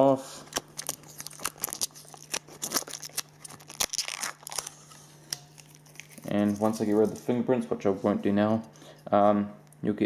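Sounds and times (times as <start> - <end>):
plastic film peeling off metal: 0.5 - 7.3.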